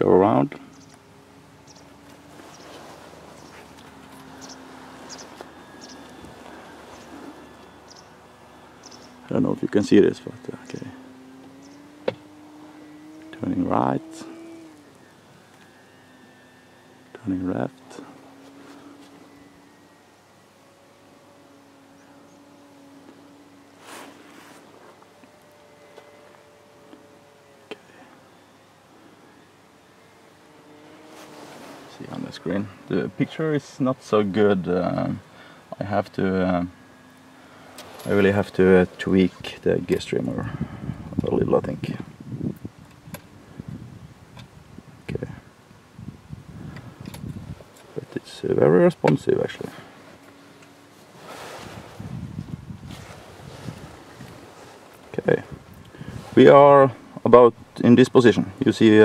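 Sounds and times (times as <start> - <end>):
faint steady hum: 0.0 - 59.0.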